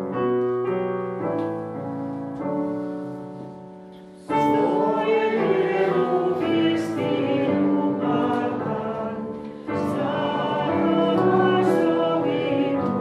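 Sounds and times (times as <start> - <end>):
digital piano: 0.0 - 13.0
congregation singing a hymn: 4.1 - 13.0.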